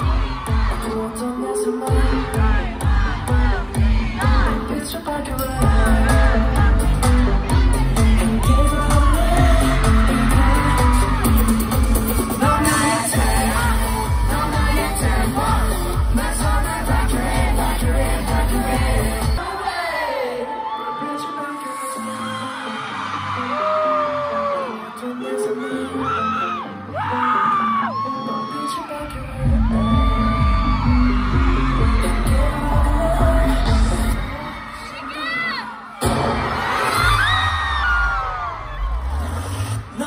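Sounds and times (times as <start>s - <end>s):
heavy bass beat: 0.0s - 1.0s, 1.9s - 4.8s, 5.4s - 19.4s, 29.4s - 34.2s
fans screaming and shouting: 0.0s - 40.0s
pop song over concert speakers: 0.0s - 40.0s.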